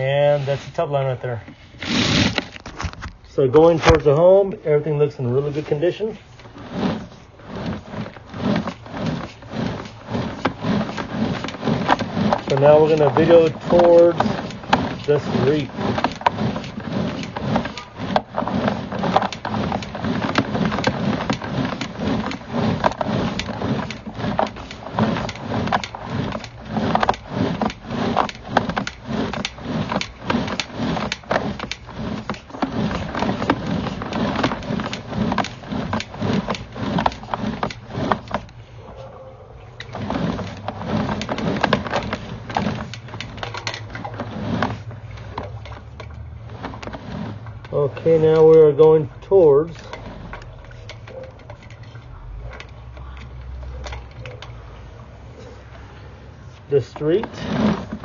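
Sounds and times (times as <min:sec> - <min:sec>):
cable reel clicking and knocking: 0:05.5 - 0:38.7, 0:39.8 - 0:54.6, 0:56.8 - 0:58.0.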